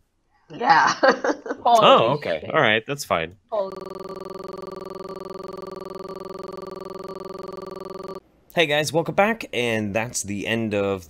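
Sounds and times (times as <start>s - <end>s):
buzzy electronic tone: 3.7s - 8.2s.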